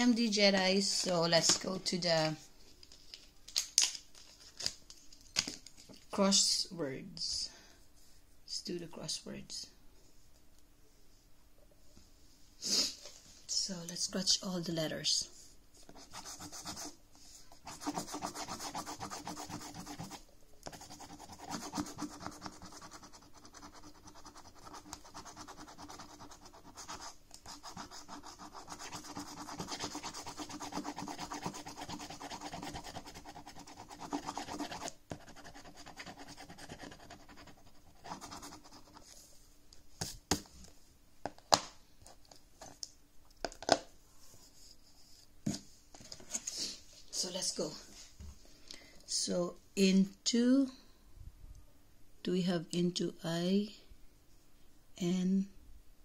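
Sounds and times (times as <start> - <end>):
token scraping scratchcard: 17.6 - 39.0.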